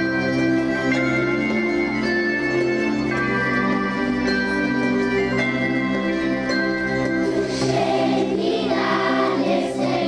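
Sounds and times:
instrumental backing music: 0.0 - 10.0
children singing together: 7.2 - 10.0.

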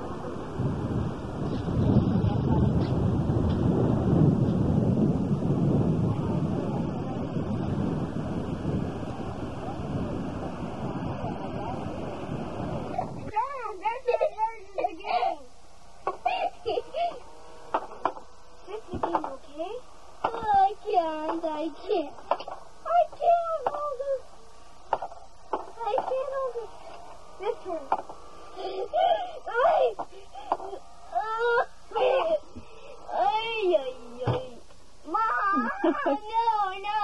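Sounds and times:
children exclaiming and squealing: 12.7 - 17.4, 28.5 - 37.0.

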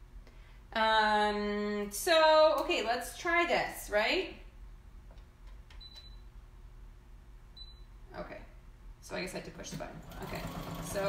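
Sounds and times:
low steady hum: 0.0 - 11.0
sewing machine beeps: 5.8 - 6.2, 7.6 - 7.8.

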